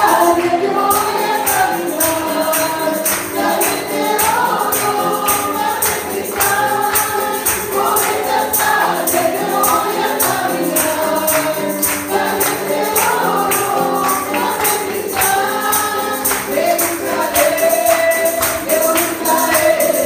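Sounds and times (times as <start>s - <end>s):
congregation singing worship song: 0.0s - 20.0s
musical accompaniment: 0.0s - 20.0s.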